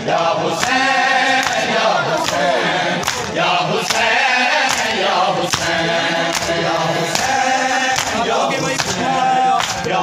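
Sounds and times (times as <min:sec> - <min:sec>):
men chanting in chorus: 0:00.0 - 0:10.0
hands striking chests: 0:01.4 - 0:07.3.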